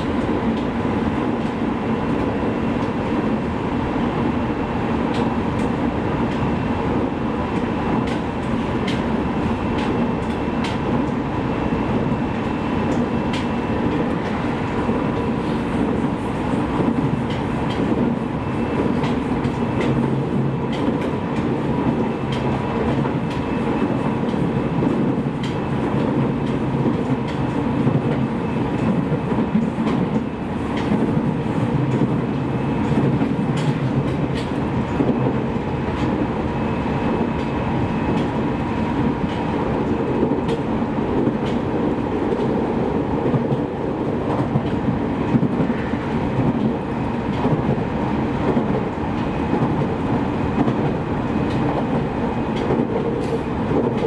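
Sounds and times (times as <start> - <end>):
train rolling noise: 0.0 - 54.0.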